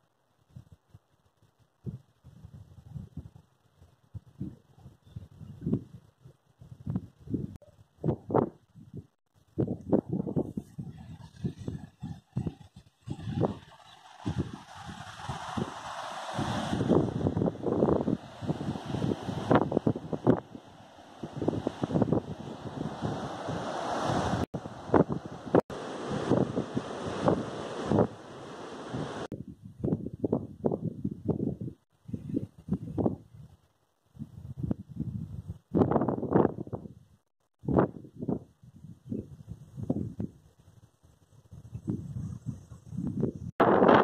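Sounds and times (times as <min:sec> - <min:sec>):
wind gusting on microphone: 0:01.8 - 0:44.0
sea surf breaking on rocks: 0:11.7 - 0:29.3.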